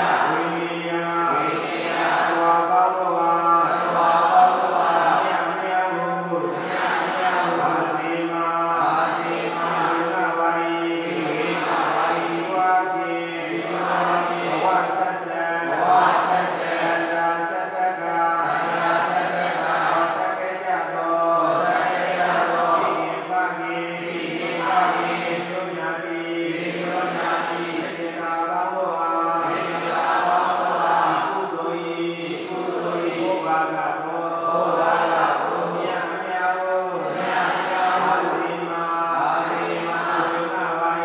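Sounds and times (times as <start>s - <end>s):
voices chanting in long notes: 0.0s - 41.0s.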